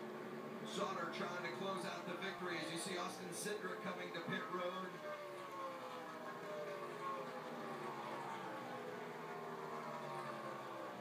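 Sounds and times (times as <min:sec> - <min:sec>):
truck engine through tv speaker: 0:00.0 - 0:11.0.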